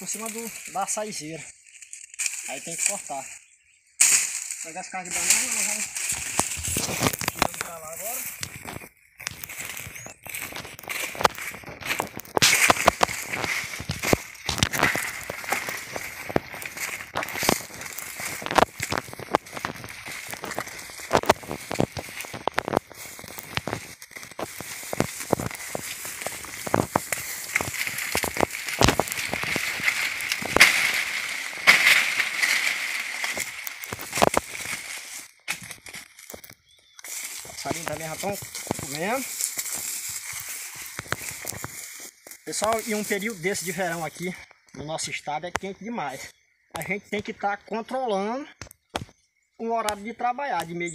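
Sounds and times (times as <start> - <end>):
footsteps crunching dry leaves: 0.0 - 44.4.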